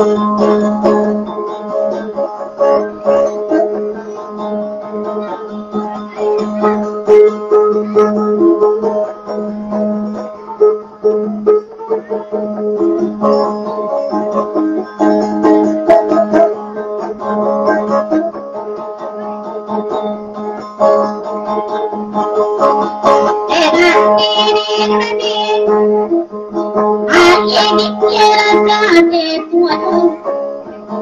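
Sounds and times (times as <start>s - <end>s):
plucked boat lute melody: 0.0s - 31.0s.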